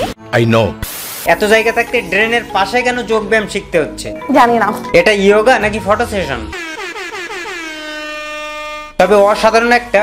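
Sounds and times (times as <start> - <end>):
blaring horn sound effect: 5.9 - 9.2.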